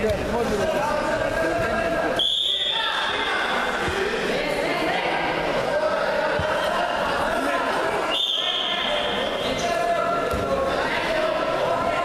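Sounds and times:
referee's whistle blast: 0:02.2 - 0:02.9, 0:08.1 - 0:09.5.

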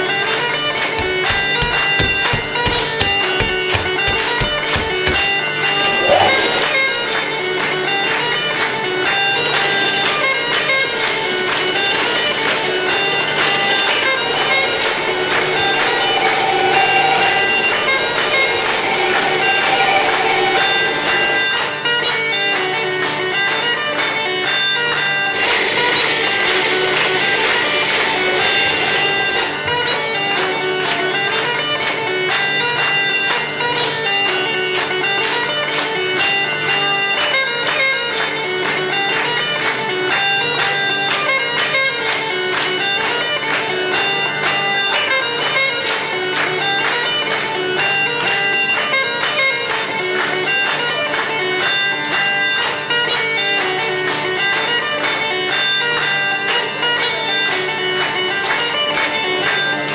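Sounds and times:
bagpipe folk melody: 0:00.0 - 0:05.8, 0:06.6 - 0:59.9
bagpipe drone: 0:00.0 - 0:59.9.

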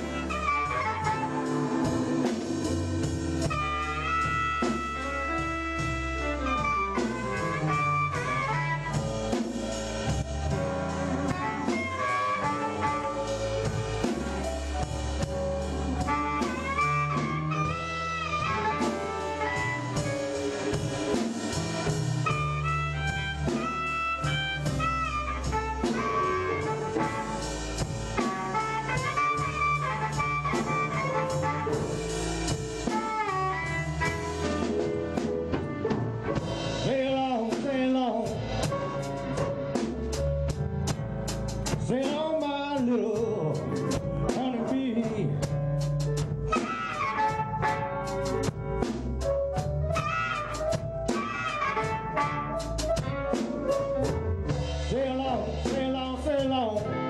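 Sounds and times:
wailing harmonica: 0:00.0 - 0:09.4, 0:10.9 - 0:14.5, 0:15.6 - 0:35.9, 0:46.5 - 0:48.2, 0:49.9 - 0:53.2
blues band playing: 0:00.0 - 0:57.0.

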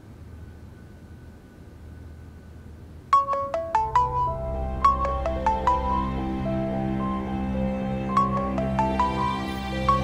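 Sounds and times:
marimba phone ringtone: 0:03.2 - 0:10.0.

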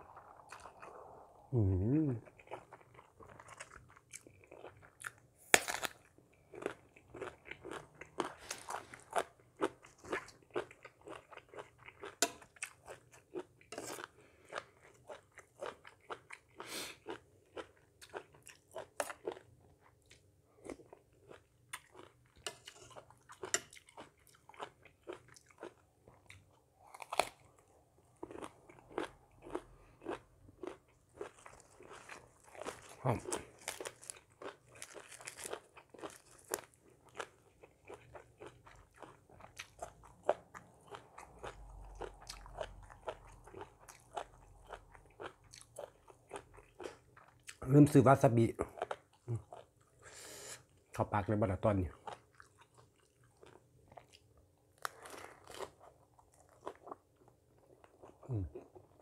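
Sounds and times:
person chewing and crunching: 0:00.0 - 0:51.0, 0:51.8 - 0:59.0.

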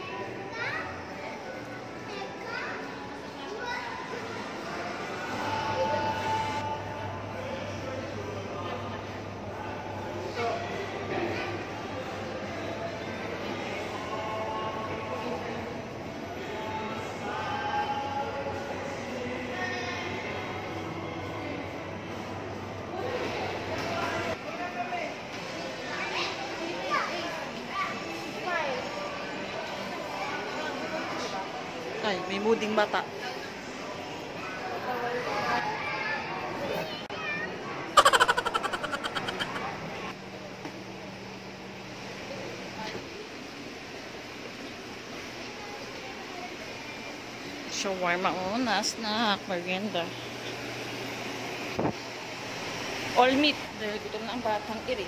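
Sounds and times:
murmur of background chatter: 0:00.0 - 0:55.0
children calling out: 0:38.0 - 0:39.8.

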